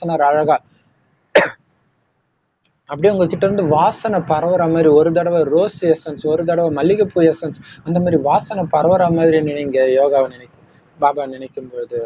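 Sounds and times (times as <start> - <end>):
man coughing: 1.3 - 1.6.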